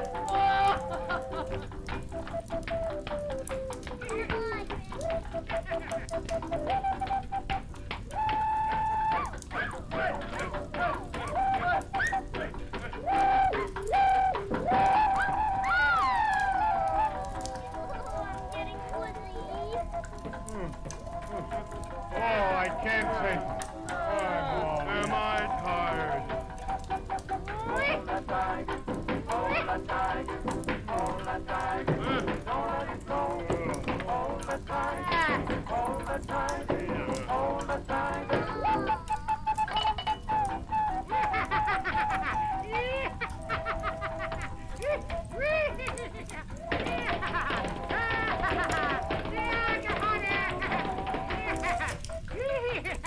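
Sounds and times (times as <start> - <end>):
cartoon band music: 0.0 - 53.0
old film crackle: 0.0 - 53.0.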